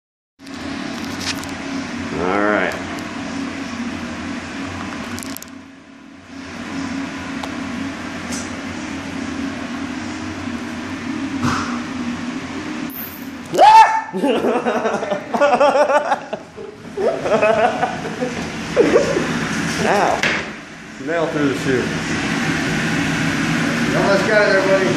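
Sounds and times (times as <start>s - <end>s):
low mechanical hum: 0.4s - 24.9s
man laughing: 14.1s - 19.3s.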